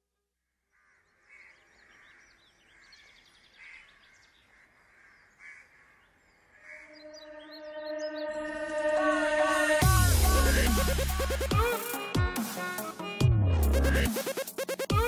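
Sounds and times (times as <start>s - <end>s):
birds chirping: 0.6s - 9.8s
sustained musical chord: 6.9s - 11.6s.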